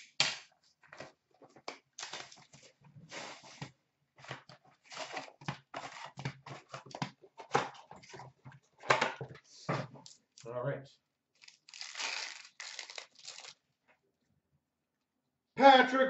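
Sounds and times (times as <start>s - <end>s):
card wrappers crinkling and tearing: 2.0s - 2.6s, 11.4s - 13.6s.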